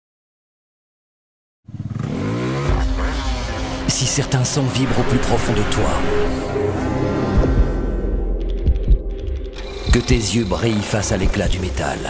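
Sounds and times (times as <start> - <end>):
motorbike engine revving: 1.7 - 11.7
deep low rumble: 2.8 - 10.3.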